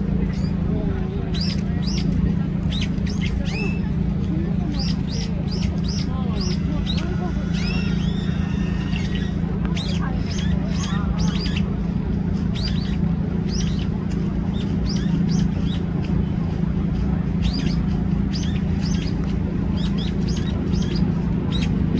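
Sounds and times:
steady low hum: 0.0s - 21.9s
bird high chirps: 1.3s - 4.0s, 4.7s - 11.7s, 12.4s - 13.9s, 14.5s - 15.9s, 17.4s - 21.9s.

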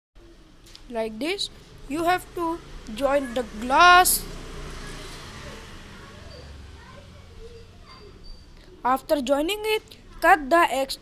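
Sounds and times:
person speaking: 0.9s - 4.3s, 8.8s - 11.0s.

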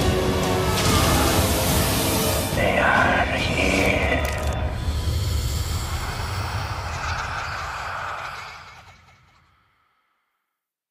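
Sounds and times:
deep rumbling drone: 0.2s - 9.4s.

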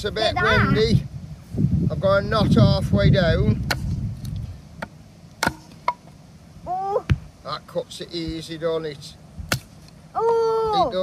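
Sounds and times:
hatchet chopping wood: 3.6s - 3.9s, 4.8s - 6.0s, 9.5s - 9.7s.

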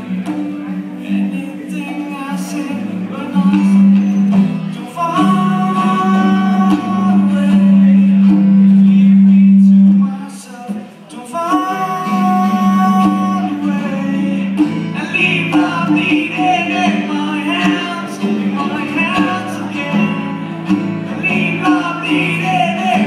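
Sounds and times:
acoustic guitars strummed: 0.0s - 23.0s
person singing: 0.0s - 23.0s.

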